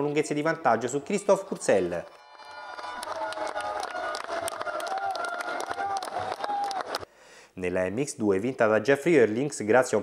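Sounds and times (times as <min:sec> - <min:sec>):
music playing: 0:02.1 - 0:04.6
crowd cheering: 0:02.1 - 0:07.1
irregular clapping: 0:02.7 - 0:07.1.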